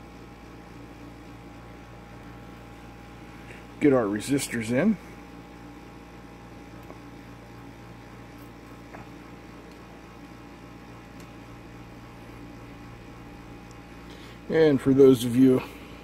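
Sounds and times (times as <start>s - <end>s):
electrical hum: 0.0s - 16.0s
faint ticks of resistors: 13.6s - 13.8s.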